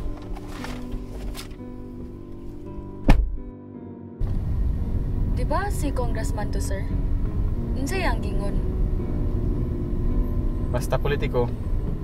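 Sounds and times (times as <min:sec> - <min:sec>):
car engine rumble: 0:00.0 - 0:03.5, 0:04.2 - 0:12.0
road noise inside car: 0:04.2 - 0:12.0.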